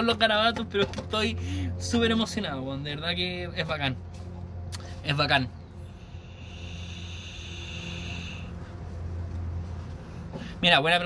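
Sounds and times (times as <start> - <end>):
breathy exhale: 5.8 - 8.8
vape whistling hiss: 6.0 - 8.5.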